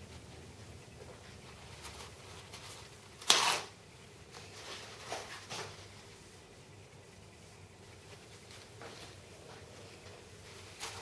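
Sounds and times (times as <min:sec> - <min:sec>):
paper towel rustling: 0:07.4 - 0:11.0.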